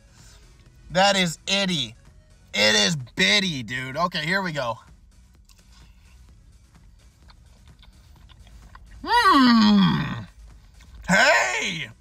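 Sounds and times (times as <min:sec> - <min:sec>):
person chewing food: 0:05.4 - 0:06.2, 0:06.8 - 0:09.0
wet mouth clicks and smacks: 0:07.0 - 0:09.0.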